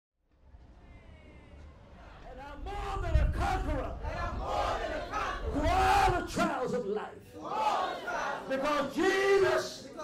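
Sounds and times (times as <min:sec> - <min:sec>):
congregation singing: 0:03.1 - 0:06.5, 0:07.4 - 0:10.0.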